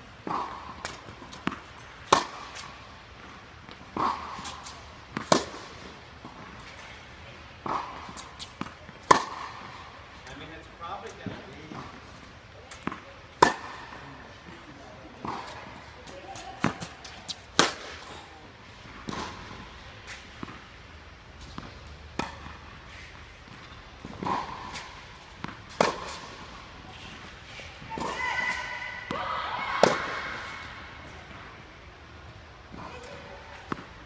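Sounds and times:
tennis racket striking balls: 0.2 - 10.4, 12.7 - 14.0, 15.2 - 31.7, 32.6 - 34.0
tennis balls bouncing: 0.2 - 34.0.

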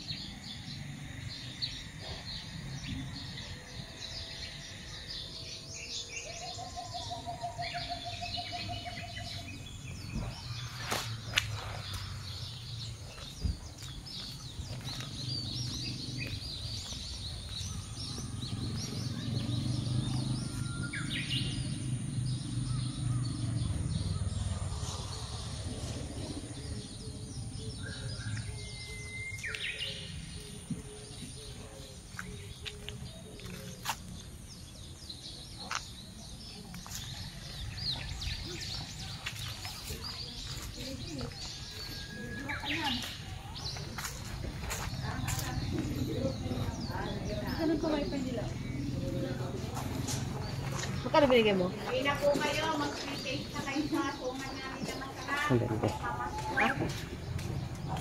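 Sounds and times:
birds chirping and calling: 0.0 - 58.0.

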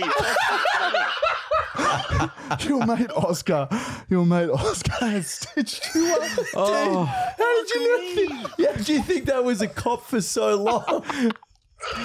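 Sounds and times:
men laughing: 0.0 - 3.7, 4.6 - 12.0.

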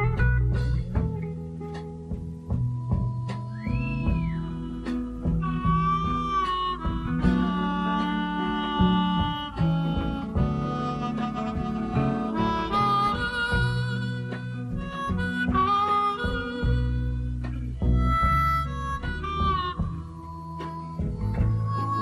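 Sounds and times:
classical guitar accompaniment: 0.0 - 22.0
harmonica melody: 0.0 - 22.0.

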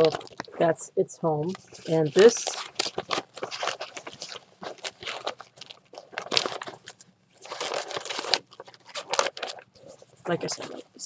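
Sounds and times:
papers in plastic sleeves crinkling: 0.0 - 0.7, 1.4 - 11.0
fabric bag handled: 1.5 - 11.0.

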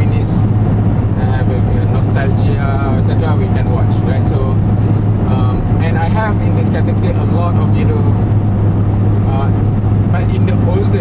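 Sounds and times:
car engine drone: 0.0 - 11.0
road noise: 0.0 - 11.0.

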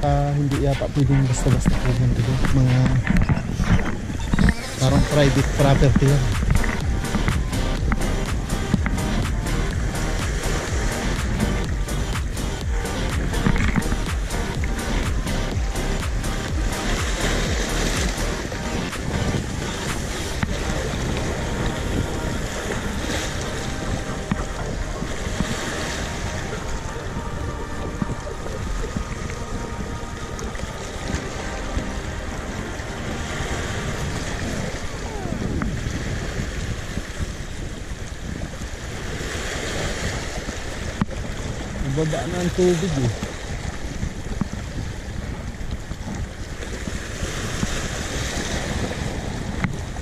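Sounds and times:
faint music: 0.0 - 35.8
waves splashing over rocks: 0.0 - 50.0
wind buffeting microphone: 0.0 - 50.0.

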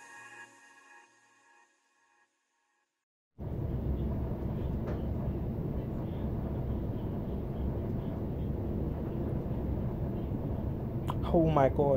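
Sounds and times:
train carriage rumble: 3.4 - 11.5.

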